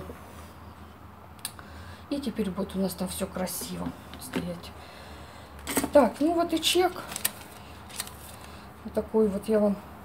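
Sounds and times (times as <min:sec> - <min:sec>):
low room noise: 0:00.0 - 0:10.0
woman speaking: 0:02.1 - 0:04.8, 0:05.7 - 0:07.3, 0:08.8 - 0:09.9
paper handling clicks: 0:06.6 - 0:08.6.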